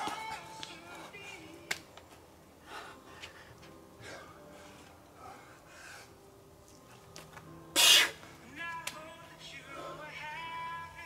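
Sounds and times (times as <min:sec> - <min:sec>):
scraping hiss on rock: 0:07.8 - 0:08.2.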